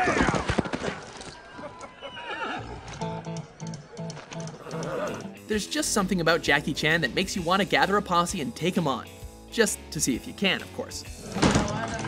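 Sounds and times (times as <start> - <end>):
horse whinnying: 1.6 - 2.9, 4.6 - 5.4.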